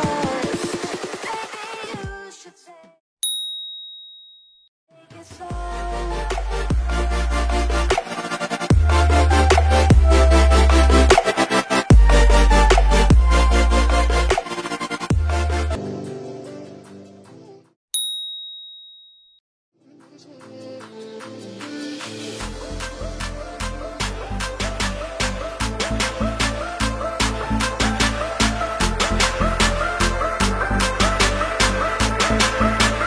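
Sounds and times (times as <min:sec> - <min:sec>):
bright ding chime: 0:03.2 - 0:04.6, 0:18.0 - 0:19.4
electronic background music: 0:05.4 - 0:17.7, 0:20.1 - 0:33.0.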